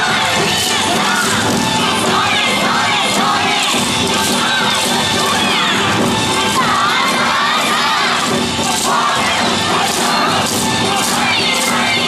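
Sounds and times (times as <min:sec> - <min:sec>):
parade music: 0:00.0 - 0:12.0.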